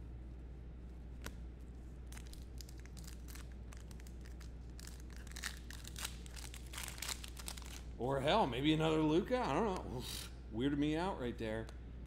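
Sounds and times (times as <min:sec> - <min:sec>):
low electrical hum: 0:00.0 - 0:12.0
plastic wrapper tearing and crinkling: 0:02.0 - 0:08.0.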